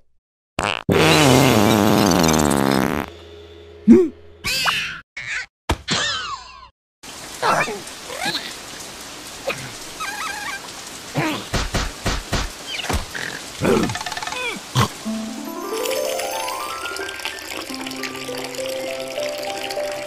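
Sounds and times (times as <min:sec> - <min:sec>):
cartoon characters squealing: 0:04.4 - 0:06.7
rain: 0:07.0 - 0:20.0.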